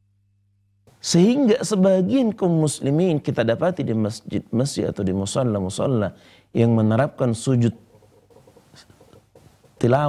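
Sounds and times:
man lecturing: 1.0 - 7.8, 9.8 - 10.0
soft small sounds: 7.6 - 10.0.

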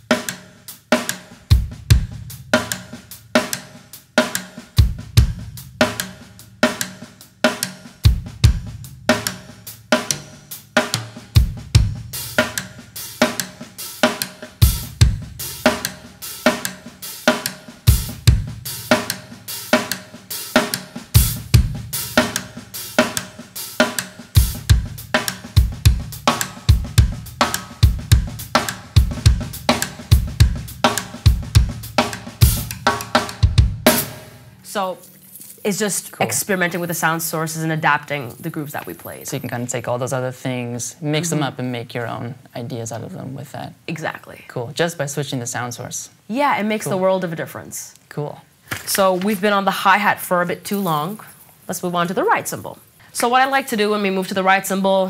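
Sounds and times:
drum kit playing a dense groove: 0.0 - 34.9, 35.8 - 42.2
bass drum strokes: 1.5 - 3.2, 14.6 - 16.0, 21.1 - 23.2.

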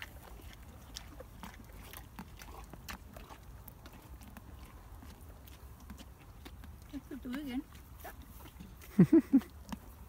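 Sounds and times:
pony chewing fruit: 0.0 - 10.0.

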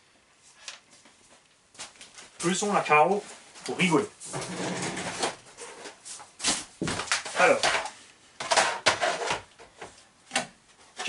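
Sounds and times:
knocks and rustles of handling: 0.6 - 11.0.

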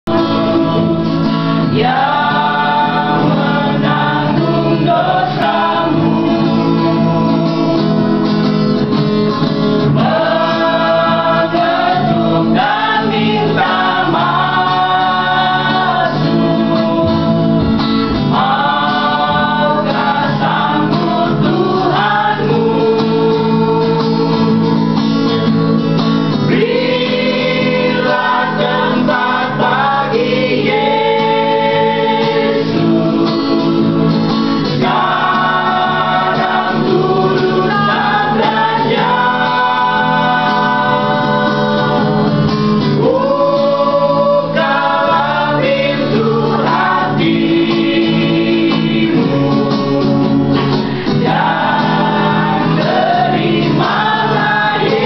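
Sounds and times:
choir singing a hymn: 0.1 - 24.9, 26.3 - 55.0.

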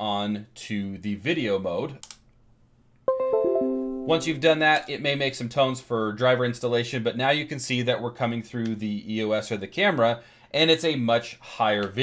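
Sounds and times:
computer system chime: 3.1 - 4.4.

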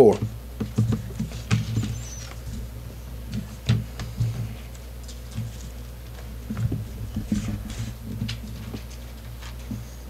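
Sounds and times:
pages rustling: 3.3 - 10.0.

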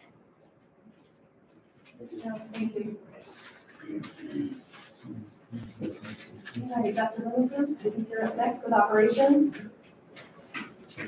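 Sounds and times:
low murmured voices: 2.0 - 9.7.

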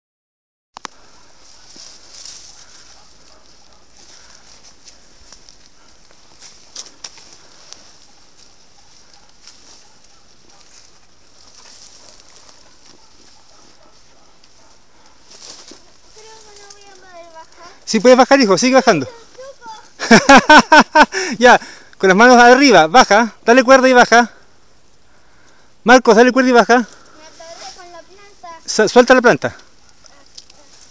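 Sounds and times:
crackles of movement over brush: 0.8 - 23.7, 24.3 - 30.9
person speaking: 15.7 - 20.0, 25.8 - 30.9.

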